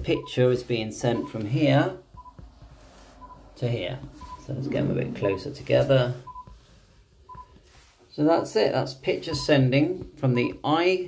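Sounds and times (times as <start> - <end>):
short electronic beeps: 2.2 - 2.4, 4.2 - 5.5, 6.2 - 6.5, 7.3 - 7.5.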